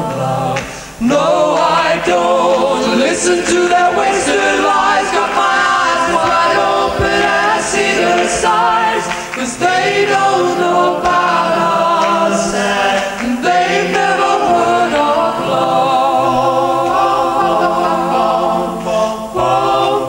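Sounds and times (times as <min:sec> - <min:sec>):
vocal group singing in harmony: 0:00.0 - 0:20.0.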